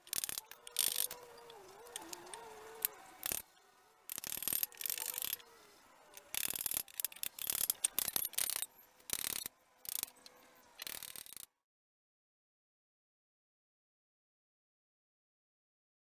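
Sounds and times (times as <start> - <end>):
wooden pegs scraping wooden rail: 0.0 - 11.5.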